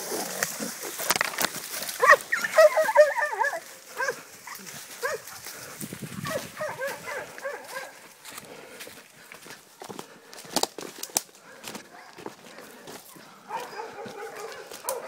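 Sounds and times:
dogs barking and yelping: 1.6s - 8.2s, 11.4s - 15.0s.

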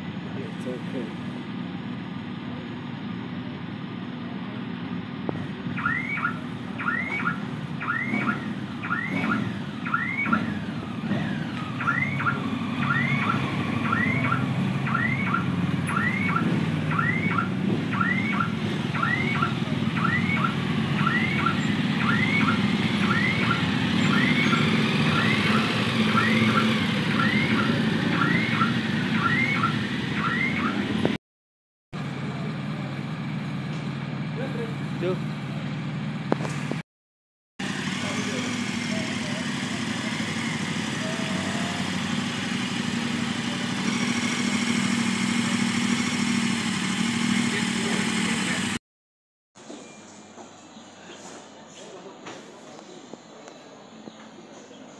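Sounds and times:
motorcycle engines rumbling: 0.0s - 31.2s, 32.0s - 36.8s, 37.6s - 48.8s
car alarm chirping: 5.8s - 10.6s, 11.8s - 30.9s.

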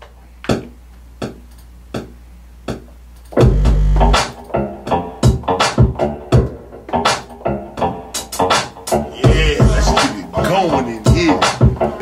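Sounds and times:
drum machine beat: 0.4s - 12.0s
deep bass hum: 3.4s - 4.2s, 9.0s - 10.0s
loud bass and drum hit: 3.4s - 4.3s, 8.9s - 10.2s.

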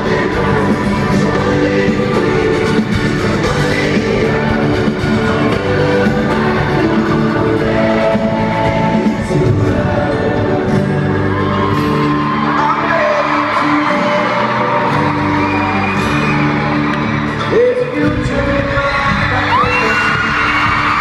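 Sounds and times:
fans screaming and whooping: 0.0s - 9.7s, 10.6s - 21.0s
live pop band music: 0.0s - 21.0s.

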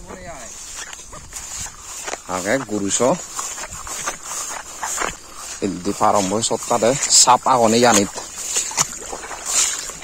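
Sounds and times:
person's voice: 5.6s - 8.2s.

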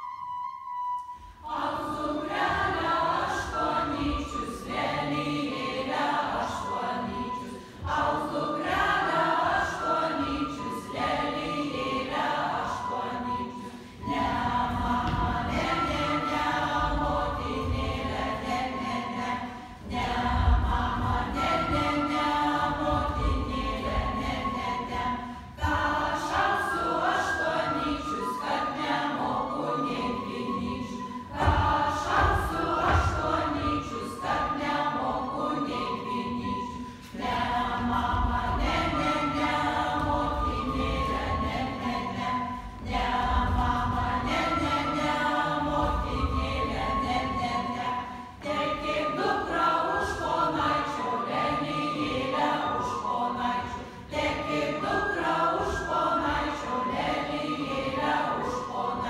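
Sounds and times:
children and adults singing: 1.4s - 59.0s.

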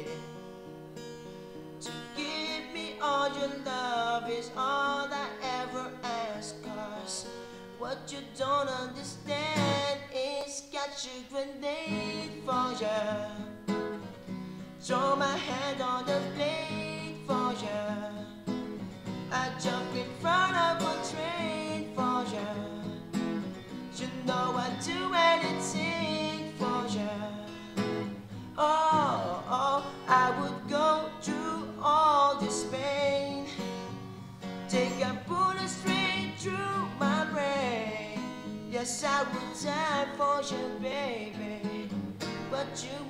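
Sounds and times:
acoustic guitar strumming: 0.0s - 43.0s
man singing: 1.8s - 13.7s, 14.8s - 18.6s, 19.3s - 23.2s, 23.9s - 27.8s, 28.5s - 33.8s, 34.7s - 43.0s.

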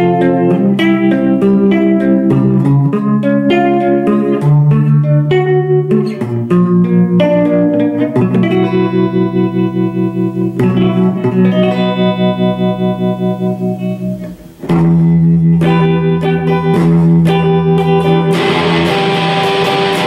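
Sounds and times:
electric guitar chords: 0.0s - 20.0s.

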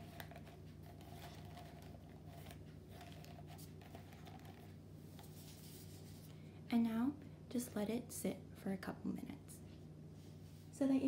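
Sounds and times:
paper coffee filter rustling: 0.0s - 6.3s
steady low hum: 0.0s - 11.0s.

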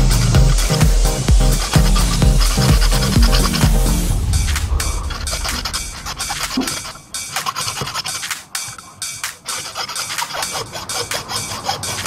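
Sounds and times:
hacksaw cutting coconut shell: 5.6s - 12.0s.

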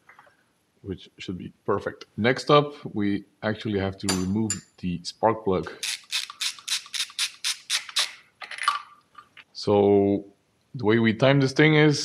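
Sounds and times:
ratchet wrench clicking: 5.8s - 8.1s.

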